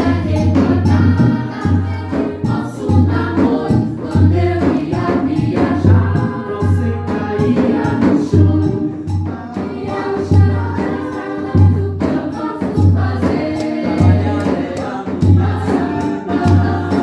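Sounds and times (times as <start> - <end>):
group singing in harmony: 0.0 - 17.0.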